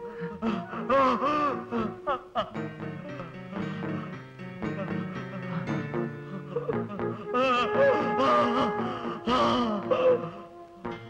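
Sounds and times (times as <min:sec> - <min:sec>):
man wailing in anguish: 0:00.0 - 0:02.6, 0:06.6 - 0:10.7
film score with held notes: 0:00.0 - 0:11.0.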